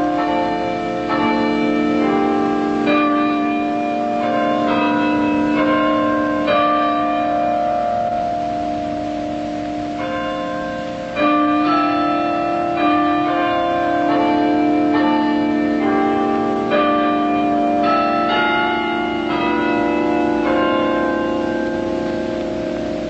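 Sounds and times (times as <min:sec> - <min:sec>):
tower bells playing melody: 0:00.0 - 0:23.0.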